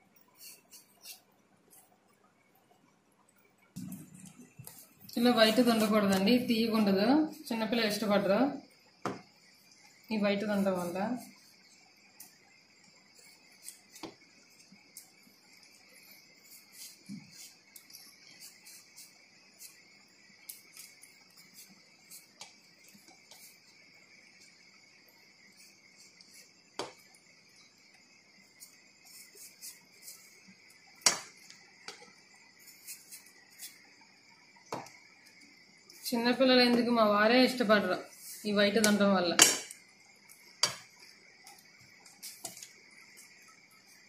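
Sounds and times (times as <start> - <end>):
insect chirring: 0.0 - 44.0.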